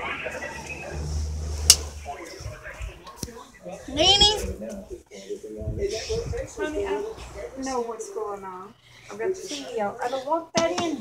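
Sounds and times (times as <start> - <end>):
faint muffled speech: 0.0 - 11.0
low rumble: 0.6 - 3.0.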